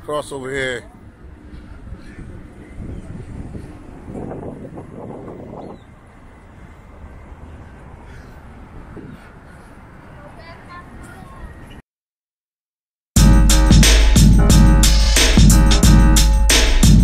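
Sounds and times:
low hum of traffic: 0.0s - 11.8s.

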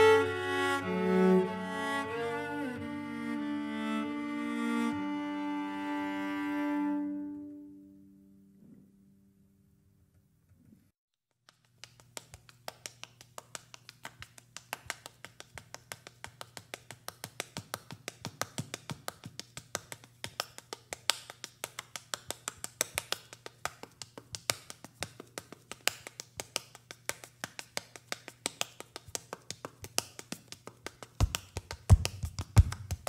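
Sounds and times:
hard-soled shoes tapping on stage: 11.5s - 33.0s.

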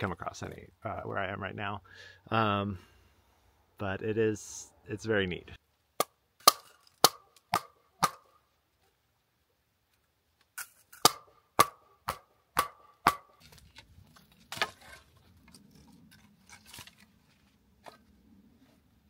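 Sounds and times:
hatchet chopping branches: 6.0s - 8.4s, 10.6s - 13.8s.

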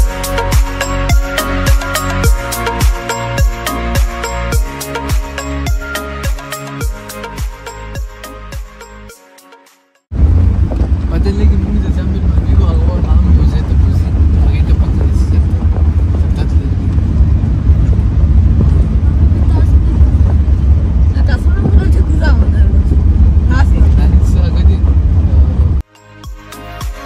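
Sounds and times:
wind and road noise rumble: 10.1s - 25.8s.

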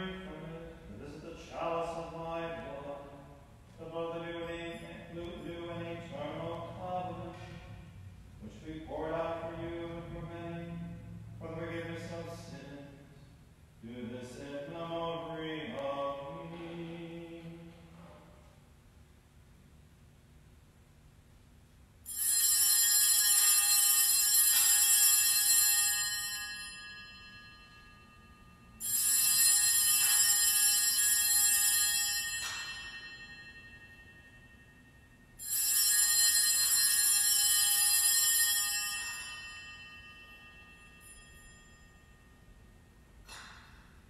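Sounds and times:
altar bells ringing: 22.1s - 43.6s.

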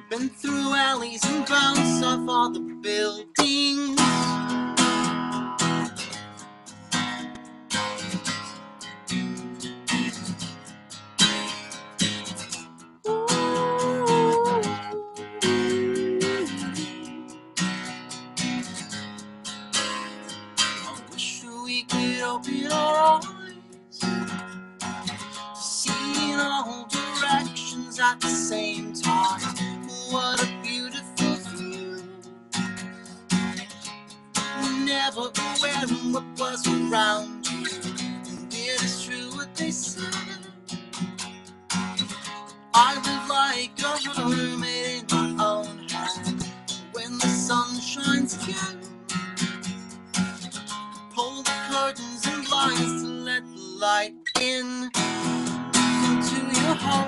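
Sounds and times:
person singing: 0.0s - 4.4s, 13.0s - 17.9s, 20.8s - 24.2s, 25.7s - 32.3s, 34.6s - 40.5s, 46.9s - 48.9s, 51.2s - 55.2s, 56.1s - 57.0s
acoustic guitar strumming: 0.0s - 57.0s.

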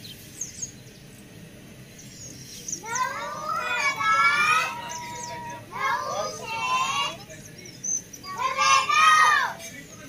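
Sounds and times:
high bird chirps: 0.0s - 1.2s, 1.9s - 6.6s, 7.2s - 9.1s
children calling out together: 2.8s - 7.3s, 8.2s - 9.7s.

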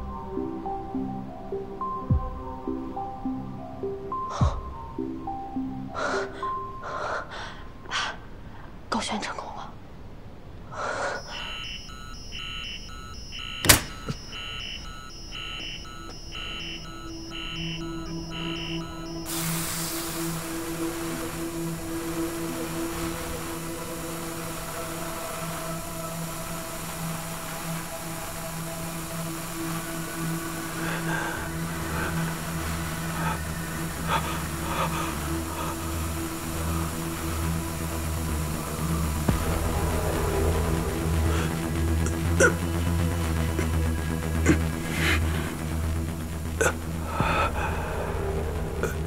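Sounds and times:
held suspense drone: 10.8s - 49.0s
pulsing low bass: 14.4s - 49.0s.

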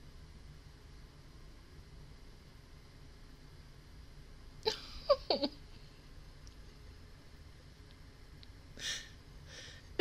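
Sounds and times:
woman giggling: 4.6s - 5.6s.

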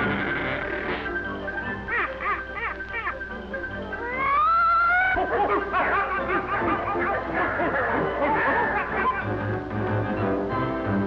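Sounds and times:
cartoon music: 0.0s - 10.2s.

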